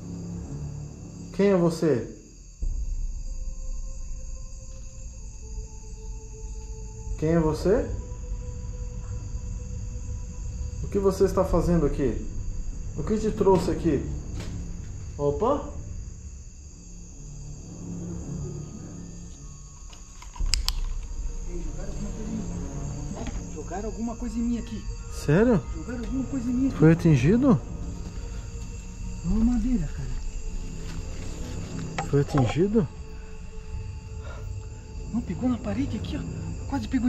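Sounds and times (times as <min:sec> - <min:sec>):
crickets trilling: 0:00.0 - 0:37.0
faint droning tones: 0:02.2 - 0:37.0.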